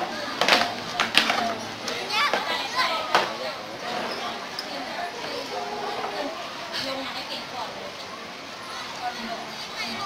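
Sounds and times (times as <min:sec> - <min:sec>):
people and children chattering: 0:00.0 - 0:10.0.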